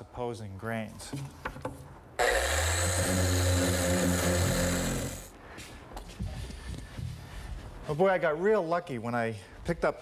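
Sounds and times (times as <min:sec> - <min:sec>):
orbital sander on wood: 0:02.2 - 0:05.3.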